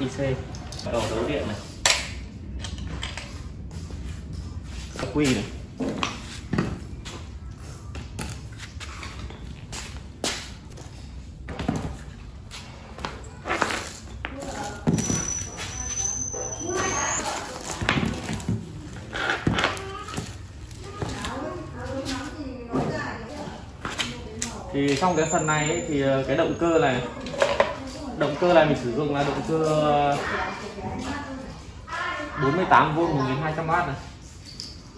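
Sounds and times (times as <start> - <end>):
voices talking: 14.2 - 34.0.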